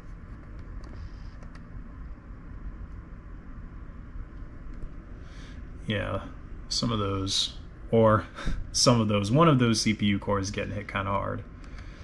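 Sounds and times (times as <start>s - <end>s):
faint clicks: 11.6s - 12.0s.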